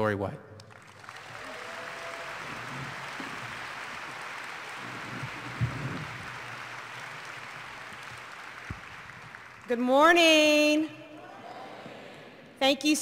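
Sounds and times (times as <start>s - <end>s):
audience applauding: 0.6s - 9.8s.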